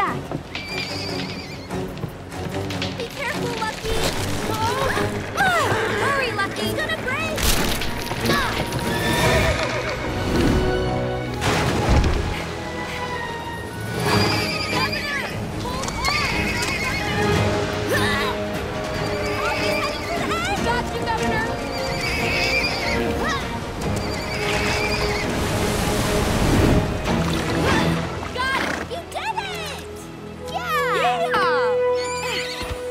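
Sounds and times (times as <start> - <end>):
orchestral music: 0.0 - 32.9
horses whinnying: 0.4 - 2.2, 4.7 - 6.6, 8.2 - 10.4, 12.8 - 18.2, 18.8 - 20.5, 21.5 - 25.4, 31.9 - 32.9.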